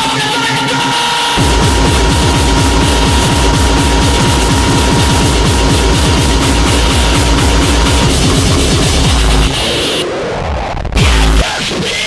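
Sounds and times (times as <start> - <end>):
fast heavy electronic music: 0.0 - 12.0
steady high tone: 1.2 - 10.1.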